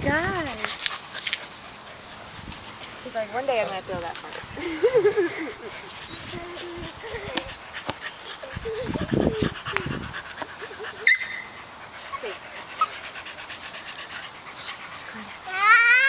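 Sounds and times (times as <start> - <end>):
dog panting quickly: 4.0 - 15.5.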